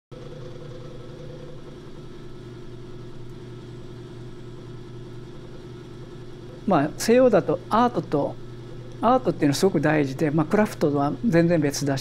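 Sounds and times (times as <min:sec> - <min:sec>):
electric motor hum: 0:00.1 - 0:12.0.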